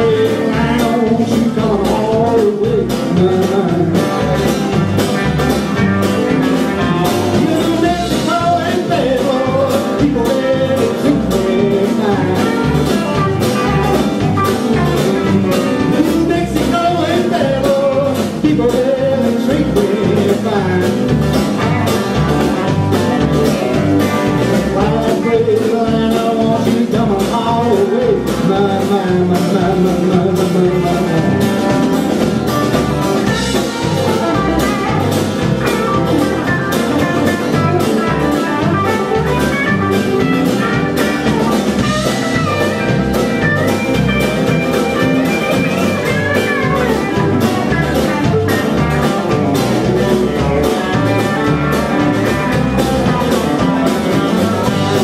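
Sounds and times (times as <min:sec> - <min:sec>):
drum kit steady beat: 0:00.0 - 0:55.0
electric bass: 0:00.0 - 0:55.0
electric lead guitar: 0:00.0 - 0:55.0
strummed acoustic guitar: 0:00.0 - 0:55.0.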